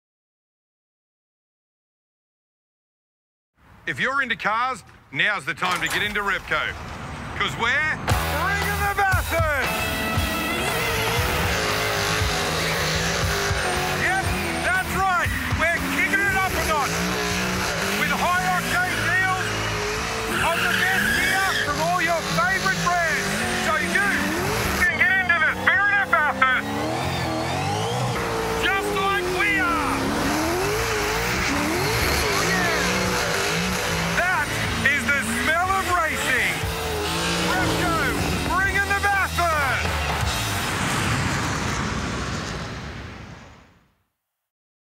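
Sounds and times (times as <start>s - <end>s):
race car engine revving: 7.4s - 43.1s
music: 8.1s - 25.7s, 31.0s - 40.8s
tyres squealing: 8.4s - 39.8s.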